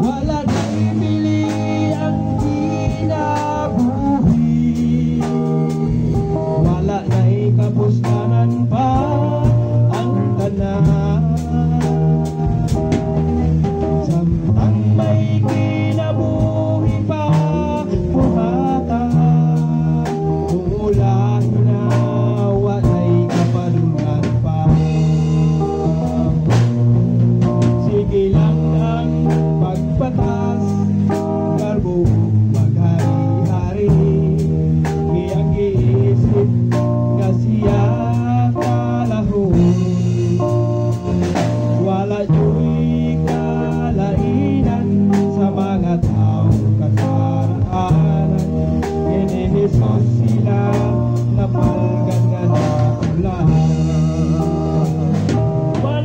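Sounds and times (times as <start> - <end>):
guitar: 0.0 - 56.0
person singing: 0.0 - 56.0
steady beat: 0.0 - 56.0.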